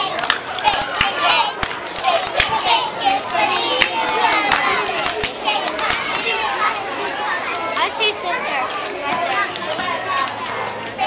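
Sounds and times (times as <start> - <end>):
young children's voices: 0.0 - 11.0.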